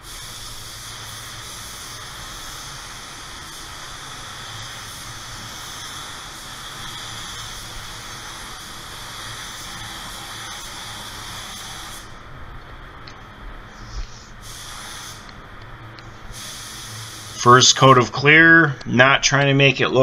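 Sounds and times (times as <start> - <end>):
spray gun hissing: 0.0 - 12.3, 13.6 - 18.0.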